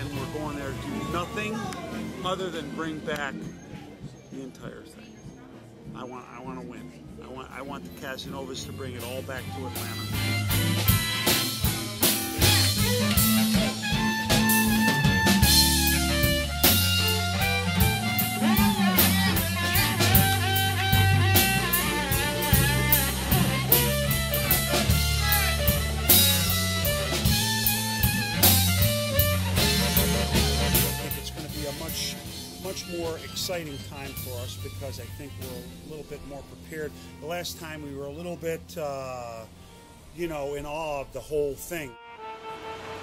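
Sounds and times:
drum kit steady beat: 0.0s - 2.0s, 8.9s - 36.1s
blues guitar lines: 0.0s - 4.7s, 5.6s - 43.0s
walking bass: 0.0s - 39.6s.

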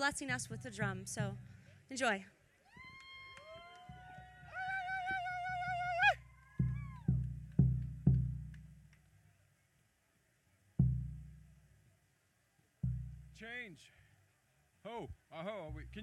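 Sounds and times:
large hand drum strokes: 6.6s - 8.9s, 10.8s - 11.6s, 12.8s - 13.4s.

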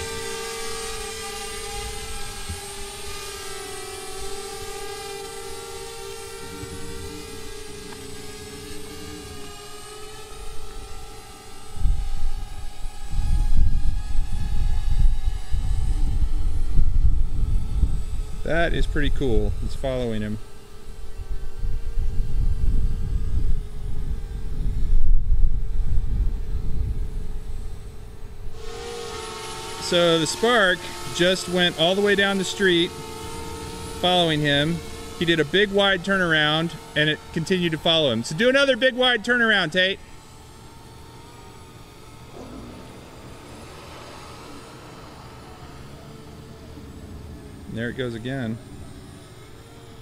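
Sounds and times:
drone propeller hum: 0.0s - 50.0s
irregular low rumble: 42.2s - 49.5s.

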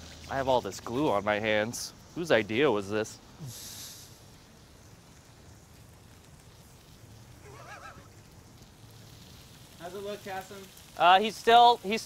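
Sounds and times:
vegetables sizzling on griddle: 0.0s - 12.0s.

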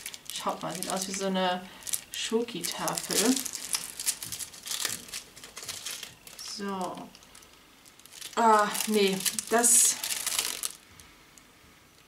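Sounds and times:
packaging rustling and clicking: 0.0s - 1.2s, 1.8s - 10.8s.

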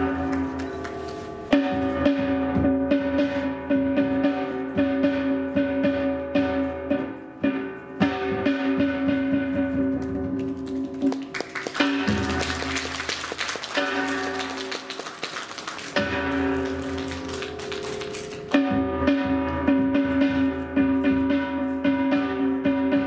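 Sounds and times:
drum and gong strokes: 0.0s - 10.5s, 11.8s - 14.9s, 15.8s - 23.0s.

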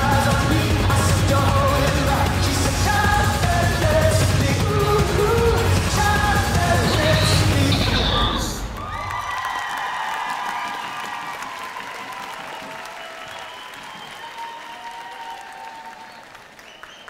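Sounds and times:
crowd applauding and cheering: 0.0s - 17.0s.

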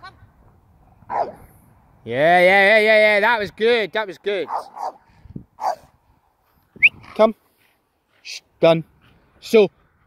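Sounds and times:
dog yipping: 1.1s - 1.4s, 4.5s - 5.0s, 5.6s - 5.8s.

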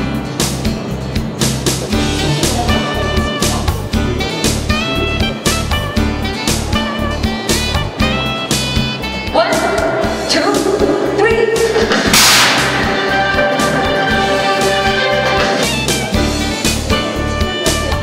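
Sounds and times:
background music with steady beat: 0.0s - 18.0s
loud crash: 11.8s - 15.0s.

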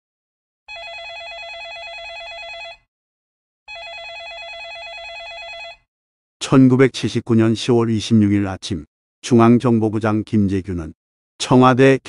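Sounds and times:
telephone ringing trill: 0.7s - 2.9s, 3.7s - 5.9s.

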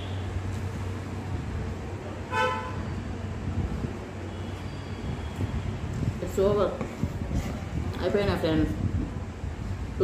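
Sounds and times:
short vehicle horn toot: 2.3s - 2.8s.

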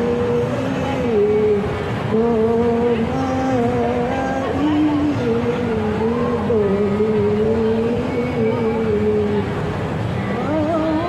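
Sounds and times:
woman chanting through speaker: 10.2s - 11.0s.

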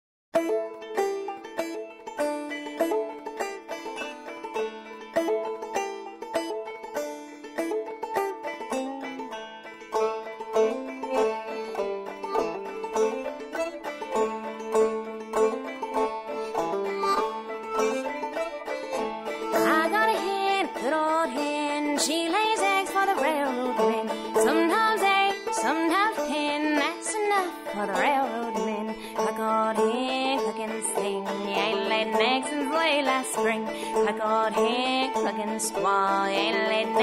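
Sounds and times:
harmonica notes: 0.4s - 37.0s
plucked banjo: 0.4s - 37.0s.

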